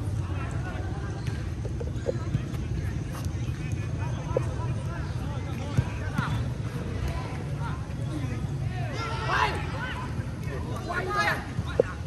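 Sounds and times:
players shouting and calling: 0.0s - 12.0s.

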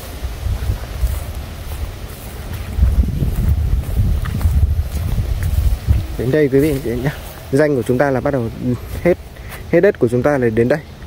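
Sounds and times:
wind buffeting microphone: 0.0s - 10.1s.

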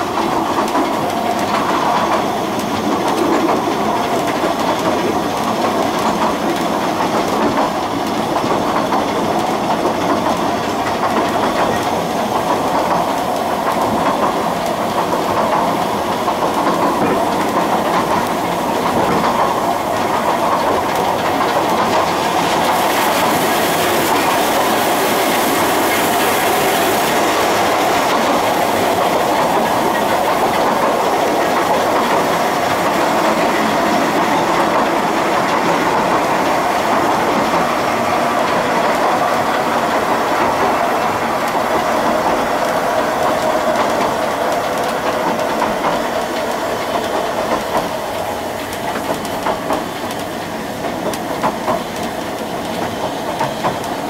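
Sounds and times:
steam hiss: 0.0s - 54.0s
steam train rumble: 0.0s - 54.0s
wheel clatter over rail joints: 0.0s - 54.0s.

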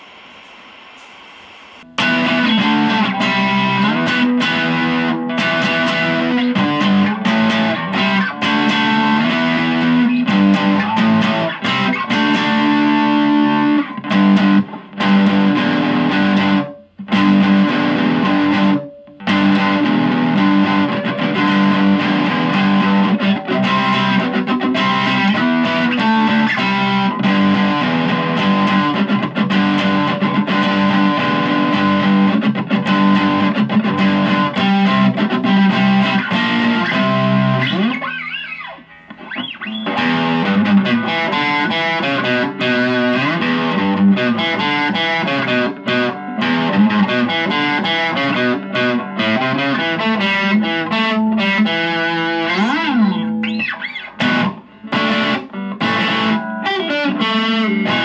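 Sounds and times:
distorted electric guitar riff: 0.0s - 58.0s.

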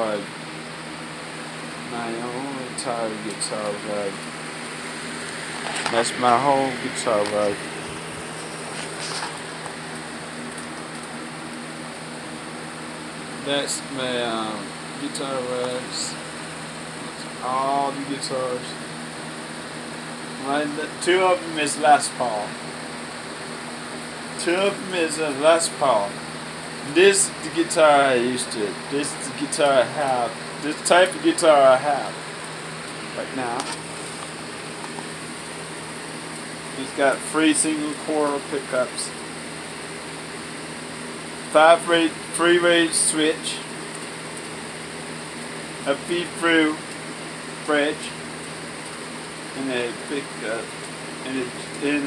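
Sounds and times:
box fan humming: 0.0s - 52.0s.

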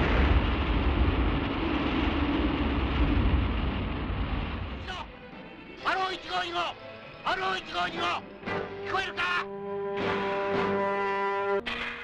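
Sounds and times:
low rumbling roar: 0.0s - 4.8s.

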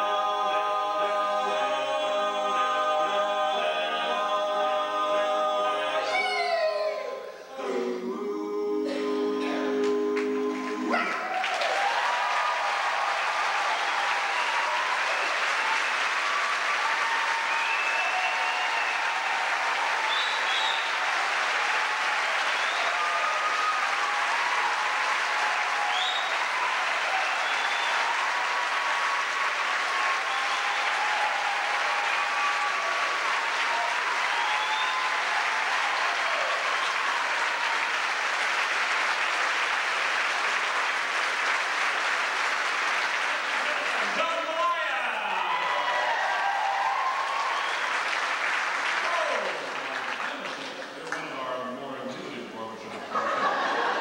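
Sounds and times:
large audience applauding: 9.7s - 51.9s, 53.0s - 54.0s.

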